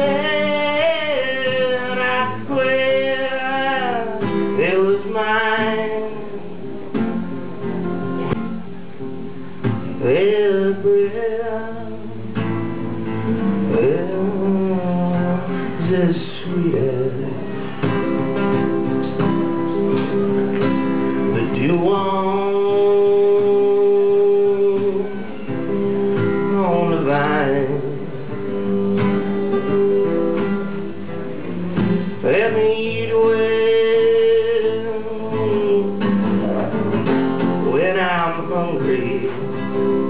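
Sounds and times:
man singing: 0.0 - 7.0, 9.8 - 18.1, 21.0 - 28.4, 32.0 - 40.0
acoustic guitar strummed and picked: 0.0 - 40.0.

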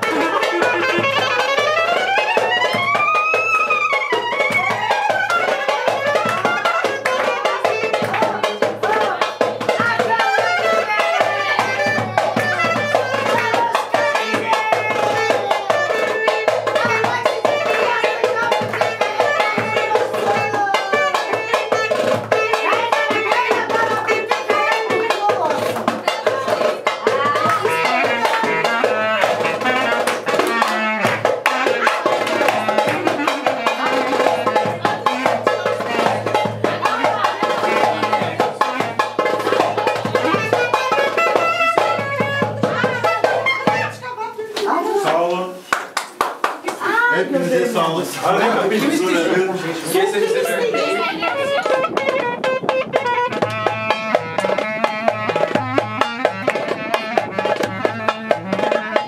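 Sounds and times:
person laughing: 0.0 - 1.2
voices: 0.0 - 45.6, 46.6 - 54.7
live band music: 0.0 - 59.0.

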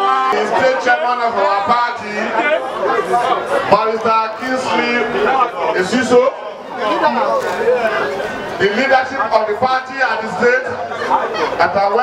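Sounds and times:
crowd chatter: 0.0 - 12.0
man speaking into a microphone: 0.0 - 12.0.

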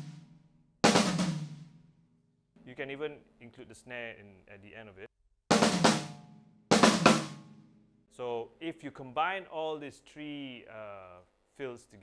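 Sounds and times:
drum fill ending on snare: 0.8 - 1.7, 5.5 - 7.5.

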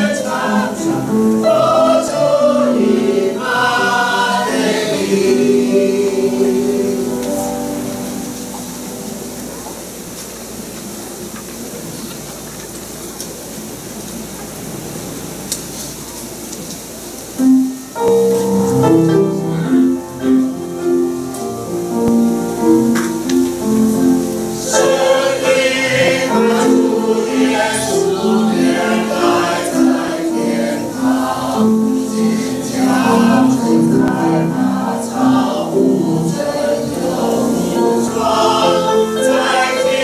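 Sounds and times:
mixed choir singing a hymn: 0.0 - 9.3, 18.8 - 40.0.

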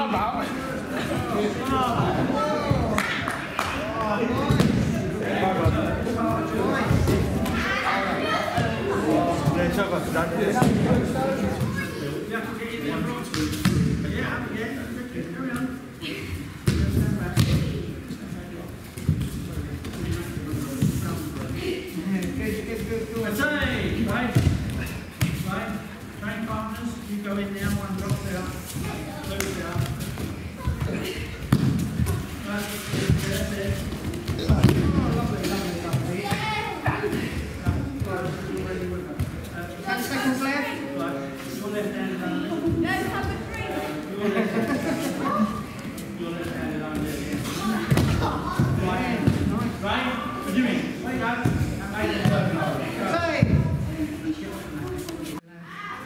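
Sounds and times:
indistinct voices in echoing hall: 0.0 - 56.0
indistinct voices echoing: 27.8 - 41.4.

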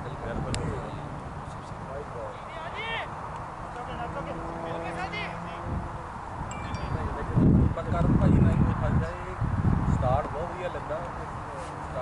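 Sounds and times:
wind buffeting microphone: 0.0 - 1.7, 3.5 - 12.0
chime-like ringing: 6.5 - 7.8.

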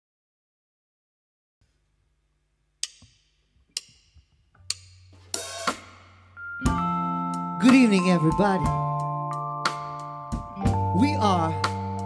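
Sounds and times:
drumsticks clicking together: 2.8 - 5.0.

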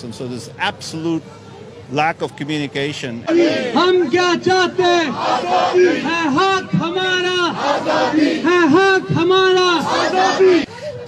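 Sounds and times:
man shouting into a microphone: 3.2 - 7.6, 8.4 - 10.7
crowd shouting in unison: 3.2 - 10.7.

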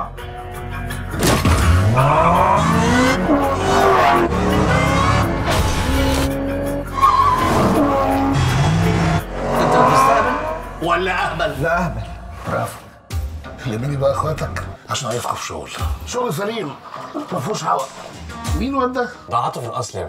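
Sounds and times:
music: 0.0 - 20.0
car engine revving: 1.1 - 11.0
tyres squealing: 6.9 - 10.8.

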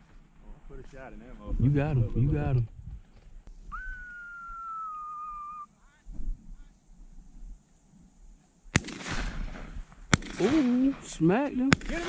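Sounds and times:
whistle sliding down in pitch: 3.7 - 5.7.

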